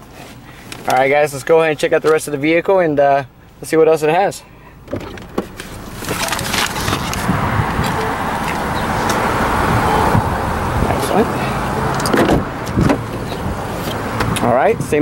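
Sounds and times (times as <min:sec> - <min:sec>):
car door opening: 0:04.8 - 0:15.0
handheld movement rustling: 0:05.2 - 0:08.6.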